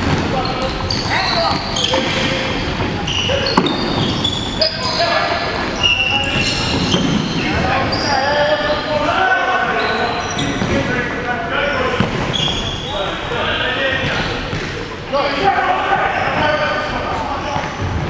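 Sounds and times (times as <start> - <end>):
players calling out: 0.0 - 17.9.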